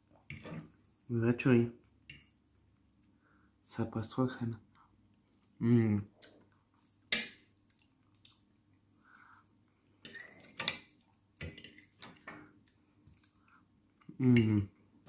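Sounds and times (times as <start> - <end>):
fork clinking and scraping on plate: 10.0 - 12.2.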